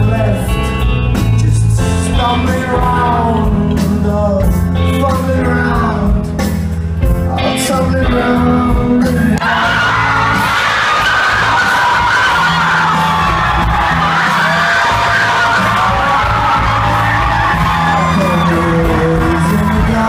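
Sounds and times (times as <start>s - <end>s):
crowd noise: 0.0s - 20.0s
rock band playing live: 0.0s - 20.0s.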